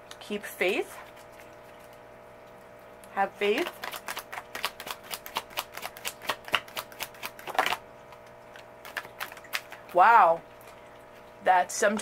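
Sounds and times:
cards being shuffled: 3.6s - 8.2s, 8.8s - 10.0s.

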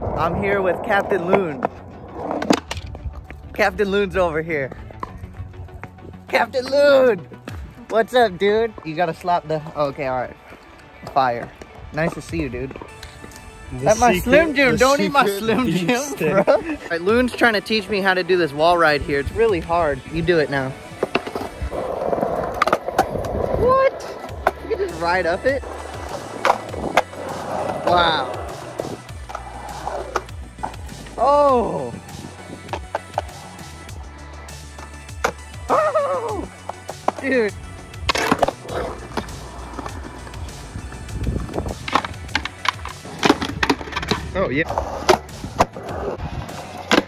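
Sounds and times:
skateboard wheels rolling on concrete: 0.0s - 47.0s
skateboard clacks: 21.0s - 31.1s, 41.4s - 47.0s
person calling out: 31.2s - 32.0s, 35.7s - 36.5s.

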